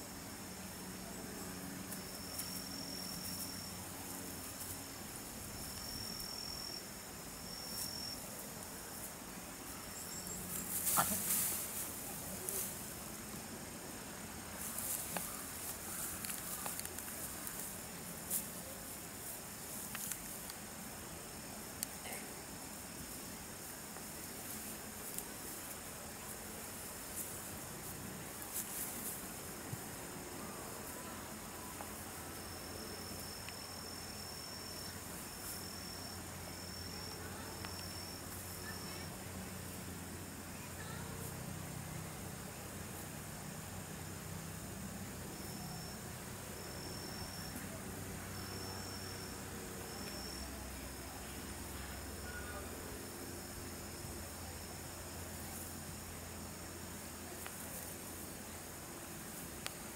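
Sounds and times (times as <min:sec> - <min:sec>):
high-pitched insect trill: 0:00.0 - 0:13.6, 0:14.4 - 0:59.9
faint low hum: 0:00.0 - 0:59.9.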